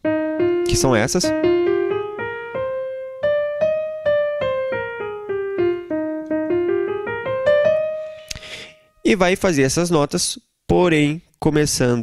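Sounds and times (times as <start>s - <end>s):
digital keyboard playing a scale: 0.0s - 8.7s.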